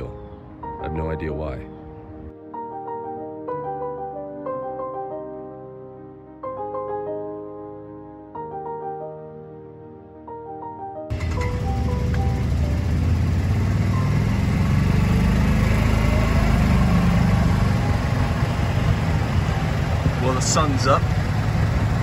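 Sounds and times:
piano music: 0.0 - 22.0
golf cart rumbling: 11.1 - 22.0.

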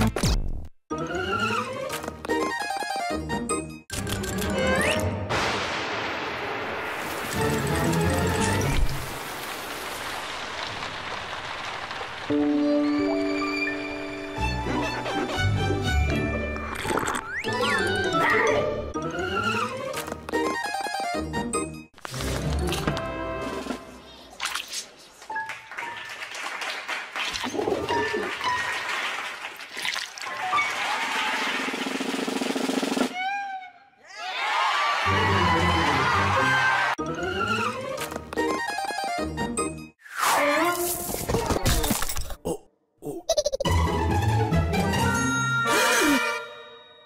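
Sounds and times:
rain downpour hiss: 5.6 - 12.6
music with sustained notes: 12.3 - 16.4
cartoon music: 14.6 - 19.8.

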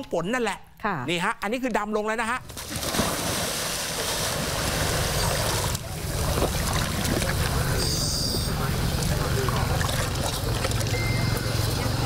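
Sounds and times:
water splashing and churning: 2.4 - 11.4.

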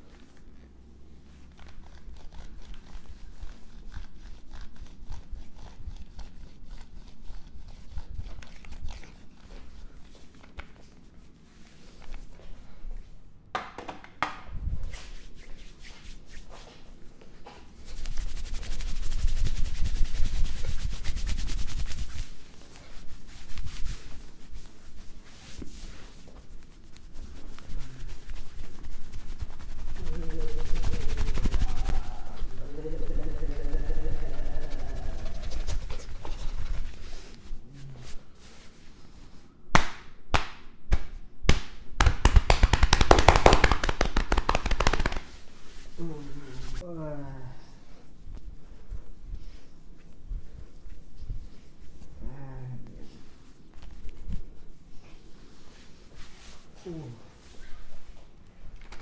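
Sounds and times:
rapid hand slaps on skin: 39.7 - 45.4.

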